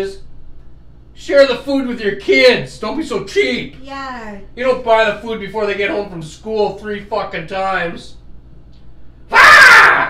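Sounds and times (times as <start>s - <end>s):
man yelling: 9.3s - 10.0s.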